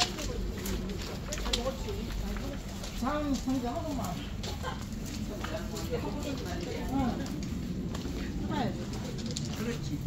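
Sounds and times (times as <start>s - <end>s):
indistinct background voices: 0.0s - 10.0s.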